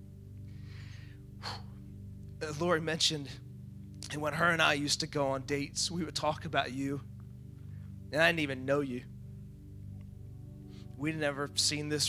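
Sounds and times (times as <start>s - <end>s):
soft background music: 0.0s - 12.0s
person breathing into microphone: 0.5s - 1.8s.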